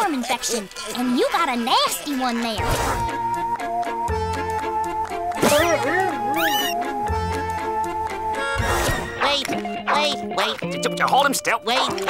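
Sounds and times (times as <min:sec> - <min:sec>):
cartoon background music: 0:00.0 - 0:12.0
wavering meow-like sound effect: 0:06.3 - 0:06.8.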